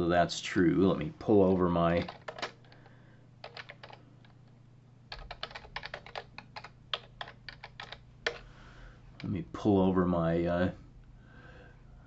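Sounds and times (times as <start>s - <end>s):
faint low hum: 0.0s - 12.0s
typing on computer keyboard: 2.0s - 2.8s, 3.4s - 4.0s, 5.1s - 8.4s.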